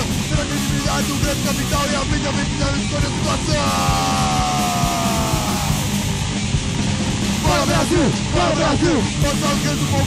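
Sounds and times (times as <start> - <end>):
drums: 0.0 - 10.0
loud distorted guitar: 0.0 - 10.0
punk band playing: 0.0 - 10.0.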